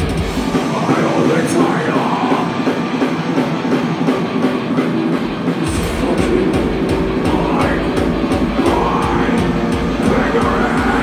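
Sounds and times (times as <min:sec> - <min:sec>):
heavy bass and kick drums: 0:00.0 - 0:11.0
heavy metal band playing live: 0:00.0 - 0:11.0.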